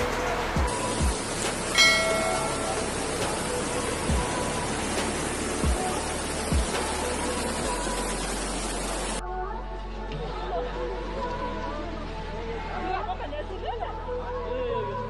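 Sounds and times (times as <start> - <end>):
floodwater rushing: 0.0 - 9.2
music: 0.0 - 15.0
bell-like chime: 1.7 - 2.9.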